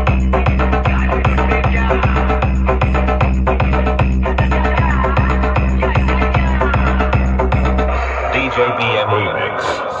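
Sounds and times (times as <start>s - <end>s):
dance music heavy bass beat: 0.0s - 10.0s
person speaking over loudspeaker: 8.2s - 10.0s.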